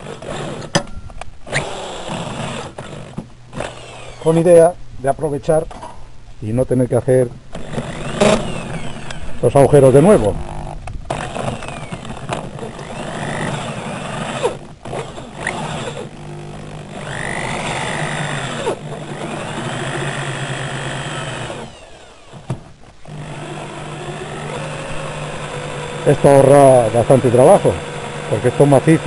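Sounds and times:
electric drill boring into iron: 1.5s - 4.6s, 7.5s - 29.0s.

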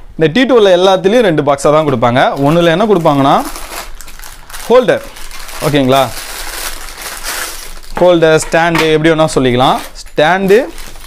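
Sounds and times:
man talking: 0.2s - 3.5s, 4.7s - 6.2s, 8.0s - 10.8s
plastic bag crinkling: 2.4s - 8.7s, 9.6s - 11.0s.

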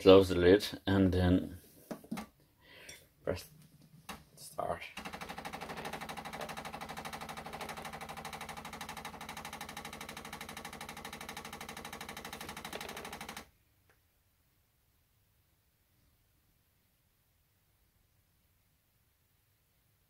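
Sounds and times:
coffee machine pump buzzing: 5.0s - 13.5s.

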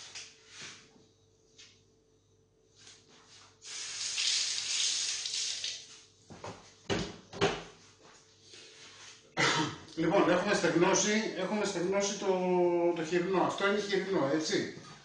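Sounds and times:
water running from a tap: 3.6s - 5.9s.

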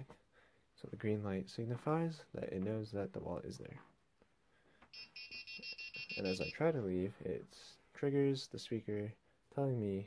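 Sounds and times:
rapid high-pitched beeps: 5.0s - 6.6s.

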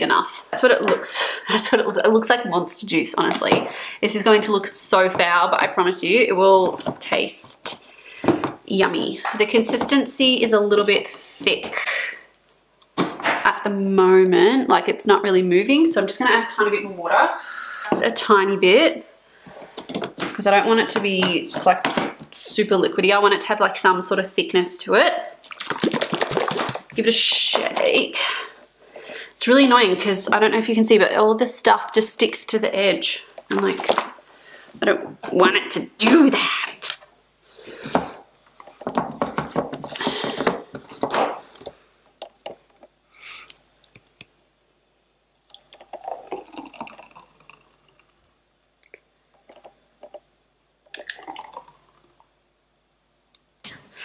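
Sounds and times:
smoothie sloshing in bottle: 25.4s - 27.0s
smoothie pouring into glass: 45.5s - 48.3s, 50.9s - 52.2s.

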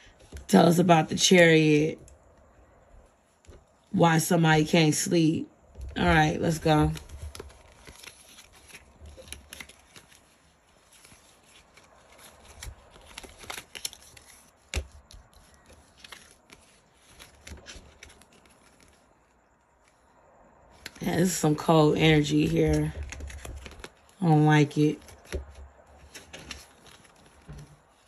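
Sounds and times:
cards shuffled and handled: 6.0s - 20.0s, 20.8s - 21.4s, 22.1s - 28.0s.

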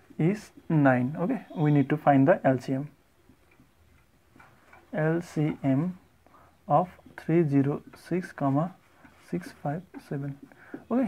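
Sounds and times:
marker scratching on whiteboard: 6.9s - 10.8s.

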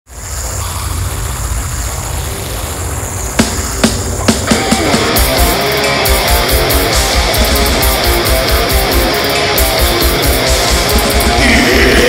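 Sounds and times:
amplifier rumble and hiss: 0.1s - 12.0s
sharp drum hits: 3.4s - 11.5s.

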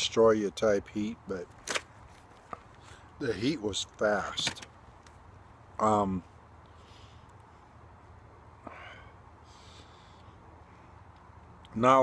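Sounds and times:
man breathing softly: 6.6s - 11.2s.

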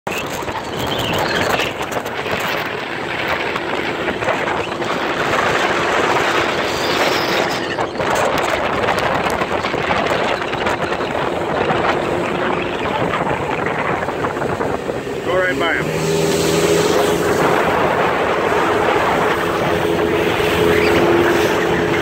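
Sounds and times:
outboard motor running: 0.1s - 22.0s
rushing water: 0.1s - 22.0s
wind buffeting microphone: 0.1s - 22.0s.

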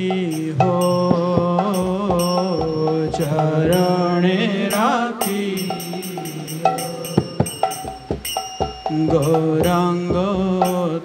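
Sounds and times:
man singing long melodic phrase: 0.0s - 8.1s, 8.8s - 11.0s
hand drum strokes: 0.0s - 11.0s
small hand cymbals ringing: 0.0s - 11.0s
steady drone: 0.1s - 10.7s.

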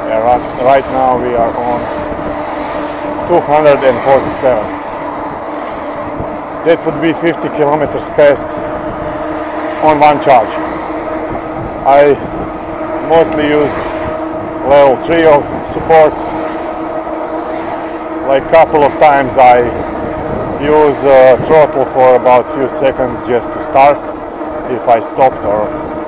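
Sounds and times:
low motor hum: 0.0s - 26.0s
wind and tyre noise: 0.0s - 26.0s.

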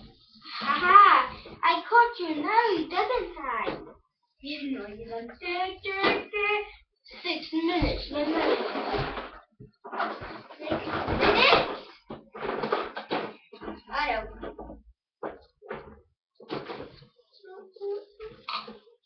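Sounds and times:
children talking: 0.5s - 8.6s, 10.5s - 12.0s, 17.4s - 18.7s.

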